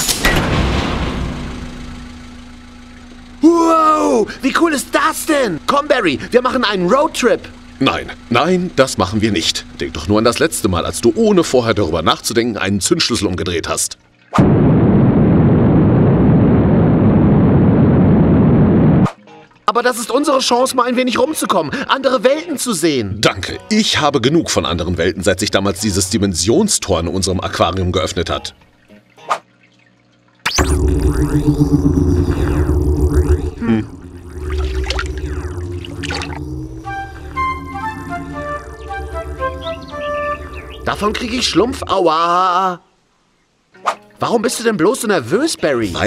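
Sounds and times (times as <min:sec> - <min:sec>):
cartoon rocket engine rumble: 0:30.5 - 0:42.0
rising bubbly sweeps: 0:30.5 - 0:42.1
low portal hum: 0:30.5 - 0:42.4.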